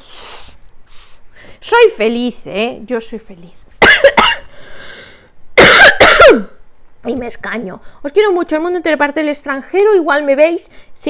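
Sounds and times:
woman coughing: 0:03.8 - 0:04.5, 0:05.6 - 0:06.6.

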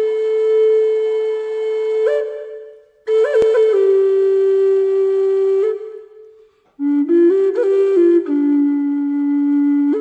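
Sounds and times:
flute holding long note: 0:00.0 - 0:10.0.

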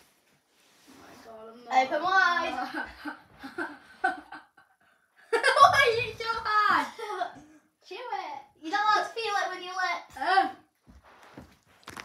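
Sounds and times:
child laughing: 0:05.3 - 0:07.5.

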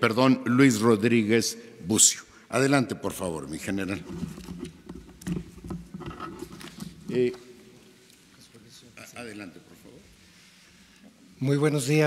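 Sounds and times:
papers rustling on lectern: 0:03.8 - 0:08.4.

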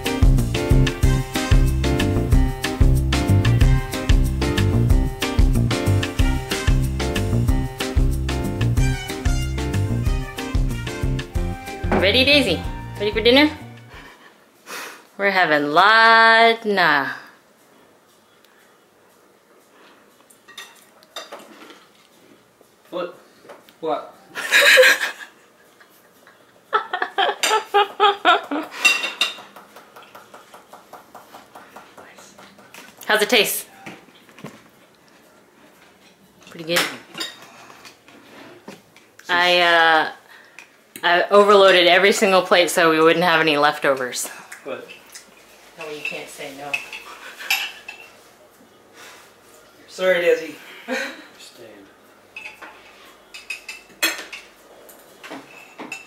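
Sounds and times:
forks scraping dinner plates: 0:28.7 - 0:29.6, 0:35.9 - 0:38.8, 0:45.8 - 0:48.2, 0:52.4 - 0:56.0.

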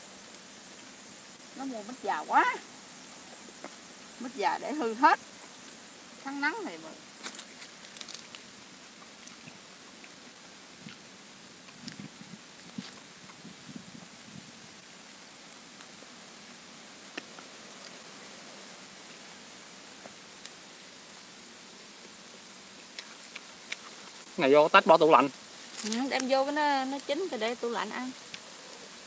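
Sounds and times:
faint background hiss: 0:00.0 - 0:29.0.

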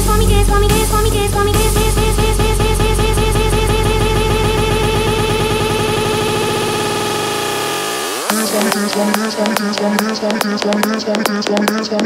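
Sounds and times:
deep bass: 0:00.0 - 0:07.8
repeating synth roll: 0:00.0 - 0:10.4.

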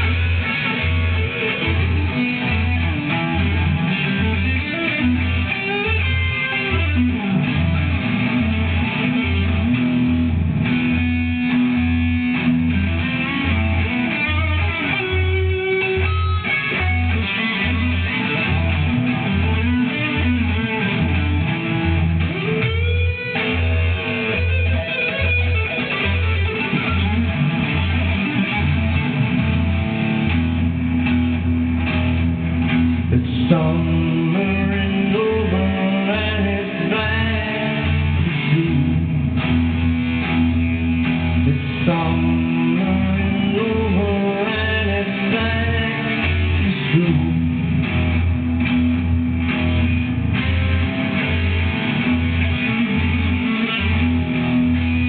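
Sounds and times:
electric guitar: 0:00.0 - 0:55.0.

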